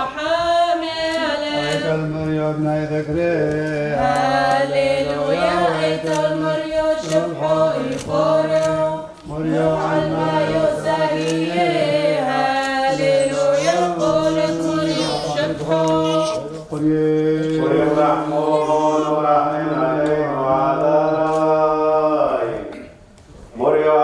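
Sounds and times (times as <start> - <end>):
man singing liturgical chant: 0.0 - 24.0.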